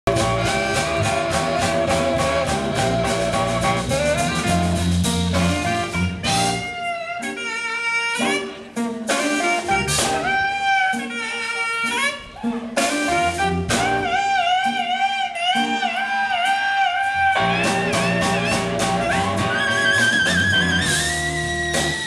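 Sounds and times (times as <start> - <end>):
drum kit: 0.0 - 22.0
electric guitar: 0.1 - 22.0
saxophone: 0.1 - 22.0.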